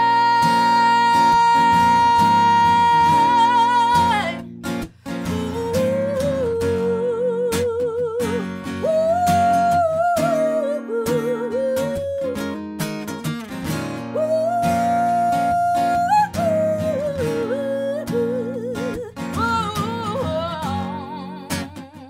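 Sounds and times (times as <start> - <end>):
woman singing with vibrato: 0.0 - 4.5, 5.1 - 12.6, 14.1 - 22.0
strummed acoustic guitar: 0.0 - 22.0.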